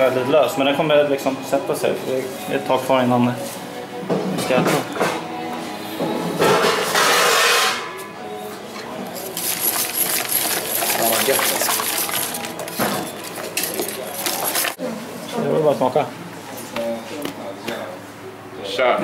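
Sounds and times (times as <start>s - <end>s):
whisk clinking against metal pot: 9.0s - 14.8s.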